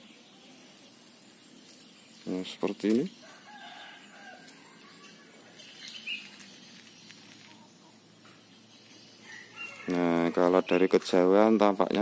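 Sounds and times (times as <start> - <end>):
faint outdoor hiss: 0.0 - 12.0.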